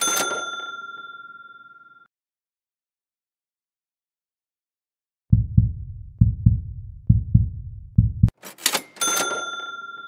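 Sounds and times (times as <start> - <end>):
heartbeat thumps: 5.3 - 8.3.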